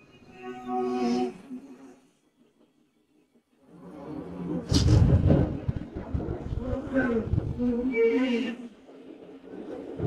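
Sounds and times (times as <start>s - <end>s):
low rumble: 4.6s - 8.4s.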